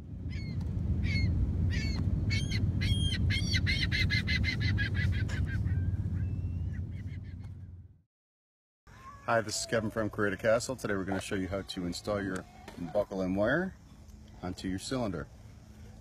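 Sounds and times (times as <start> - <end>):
steady low rumble: 0.0 - 8.0
birds honking calls: 1.1 - 7.6.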